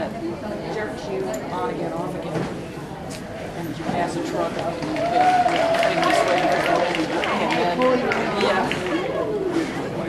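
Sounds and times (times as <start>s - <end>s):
overlapping talk in a hall: 0.0s - 10.0s.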